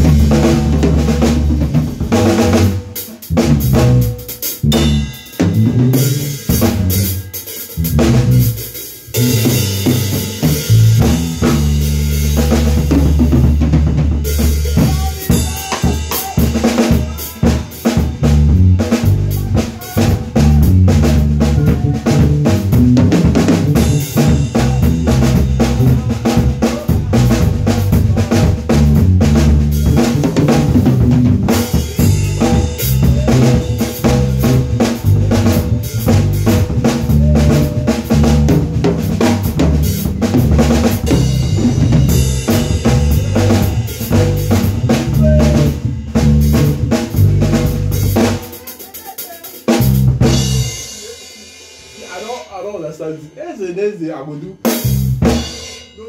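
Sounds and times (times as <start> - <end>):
electric bass guitar: 0.0 - 48.6, 49.7 - 51.0, 54.8 - 55.5
drum kit: 0.0 - 56.0
live band playing: 0.0 - 56.0.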